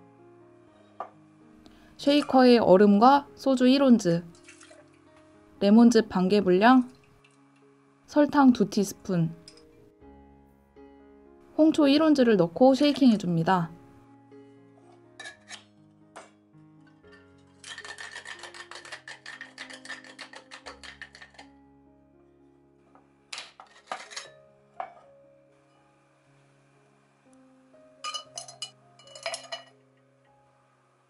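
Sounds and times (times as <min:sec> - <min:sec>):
soft background music: 0:00.0 - 0:31.0
ice rattling in cocktail shaker: 0:04.4 - 0:05.0, 0:17.4 - 0:21.4, 0:28.0 - 0:29.7
metallic clinks and knocks: 0:28.0 - 0:29.7.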